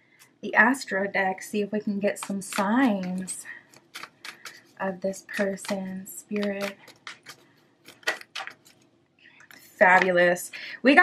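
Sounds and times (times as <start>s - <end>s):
cards being shuffled: 2.1s - 10.2s.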